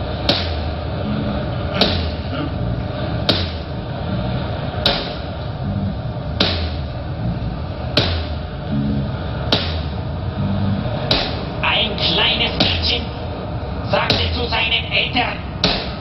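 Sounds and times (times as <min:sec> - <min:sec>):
low bass line: 0:00.0 - 0:14.5
sharp drum hits: 0:01.7 - 0:02.2, 0:06.4 - 0:06.8, 0:08.0 - 0:08.4, 0:09.5 - 0:10.0.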